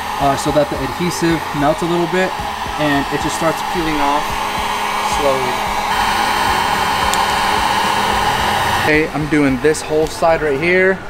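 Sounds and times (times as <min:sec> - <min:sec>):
heat gun blowing: 0:00.0 - 0:10.6.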